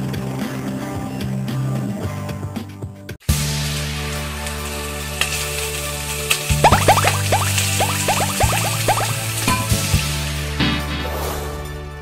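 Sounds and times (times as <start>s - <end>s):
short rising bloop effects: 6.6s - 9.3s.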